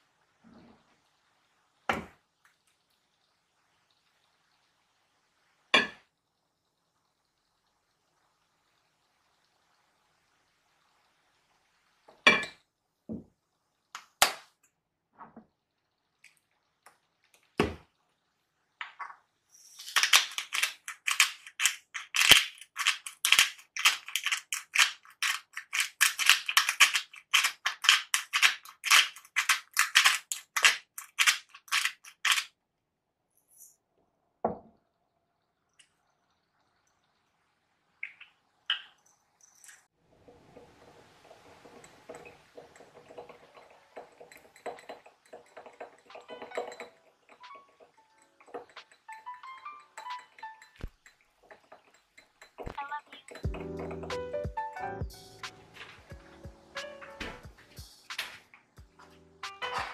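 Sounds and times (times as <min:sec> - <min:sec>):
salt grinder grinding: 0:19.8 - 0:32.5
whisk clinking against glass bowl: 0:41.8 - 0:52.7.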